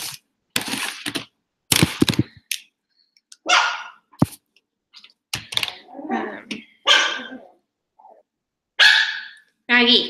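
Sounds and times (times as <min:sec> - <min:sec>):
dog barking: 0:03.4 - 0:04.0, 0:06.8 - 0:07.6, 0:08.8 - 0:09.4.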